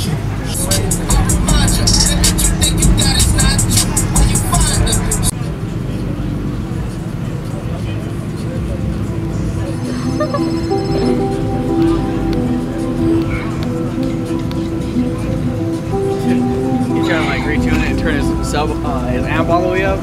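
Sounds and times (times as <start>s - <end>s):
bass-heavy music with hi-hat beat: 0.0s - 5.4s, 8.4s - 20.0s
low rumble: 0.4s - 5.3s.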